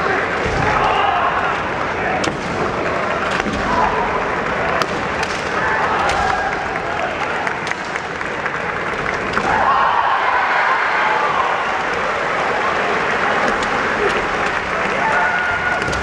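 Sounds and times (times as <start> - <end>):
fencers shouting: 0.0 - 7.7, 9.3 - 16.0
crowd din in gymnasium: 0.0 - 16.0
bamboo swords clacking: 2.2 - 4.0, 4.7 - 6.7.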